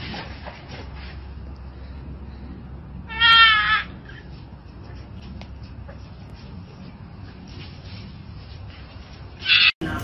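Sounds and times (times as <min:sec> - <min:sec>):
high-pitched livestock cry: 0:03.1 - 0:04.2, 0:09.4 - 0:09.8.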